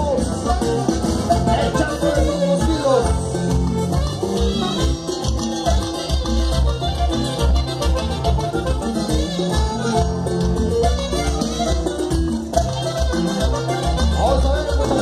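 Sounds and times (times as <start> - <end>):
brass band playing: 0.0 - 15.0
pulsing bass line: 0.0 - 15.0.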